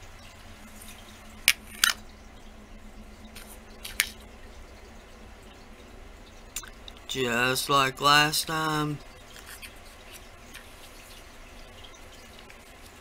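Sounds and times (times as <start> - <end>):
low steady hum: 0.0 - 13.0.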